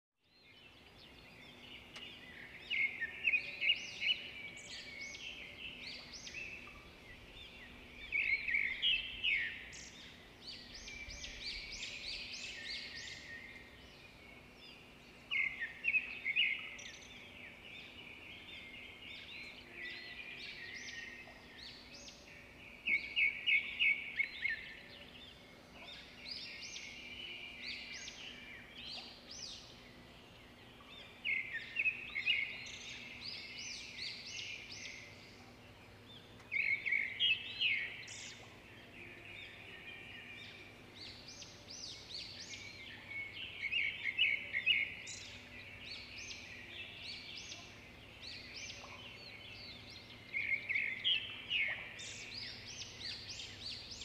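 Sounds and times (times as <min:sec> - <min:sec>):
birds chirping and singing: 0:00.4 - 0:54.0.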